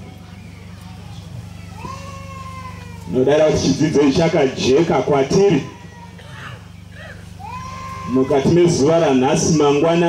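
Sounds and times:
steady low hum: 0:00.0 - 0:10.0
meow-like cry: 0:01.6 - 0:03.2, 0:05.3 - 0:08.7.

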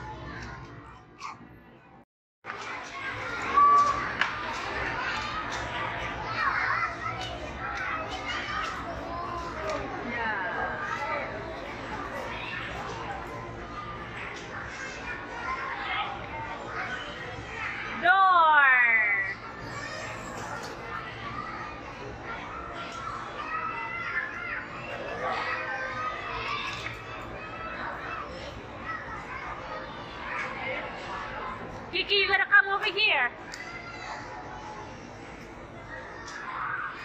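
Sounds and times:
children calling and chattering: 0:00.0 - 0:37.0.

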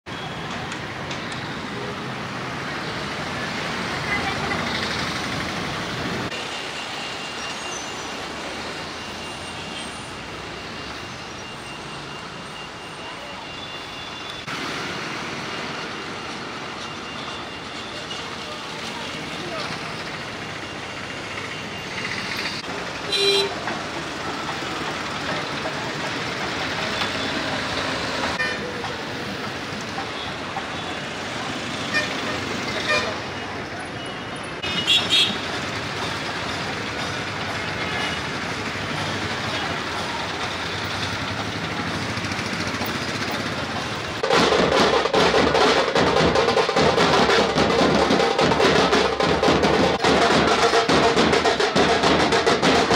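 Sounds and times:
road traffic: 0:00.0 - 0:52.9
vehicle horn toots: 0:23.1 - 0:23.6, 0:34.6 - 0:35.4.

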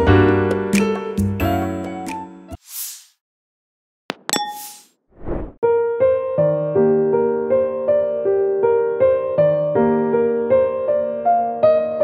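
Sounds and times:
bell-like ding: 0:04.2 - 0:04.8
brief swish: 0:04.6 - 0:05.6
short whoosh: 0:05.1 - 0:05.6.

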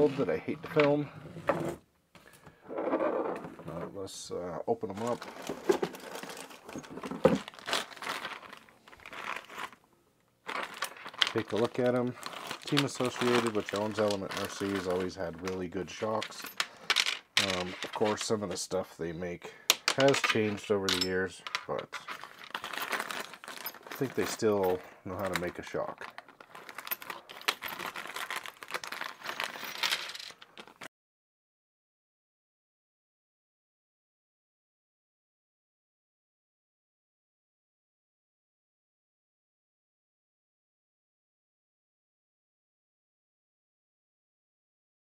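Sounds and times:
plastic bag crinkling: 0:05.0 - 0:09.8, 0:10.4 - 0:18.3, 0:22.1 - 0:30.7
small parts clicking and rattling: 0:10.5 - 0:18.4, 0:19.7 - 0:30.9.

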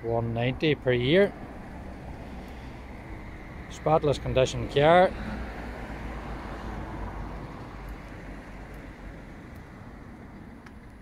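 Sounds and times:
passing road traffic: 0:00.0 - 0:11.0.

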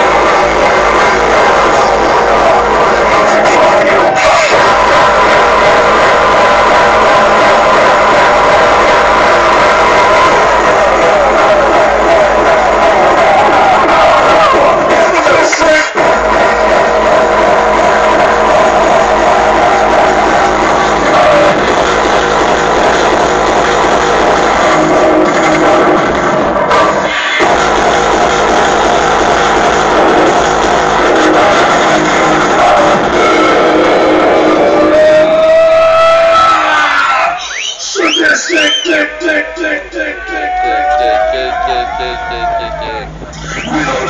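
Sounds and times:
loud electronic dance music: 0:00.0 - 0:44.0.

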